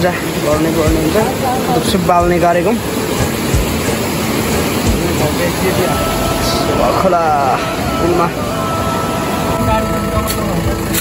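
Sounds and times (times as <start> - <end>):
fast-flowing river rushing: 0.0 - 10.2.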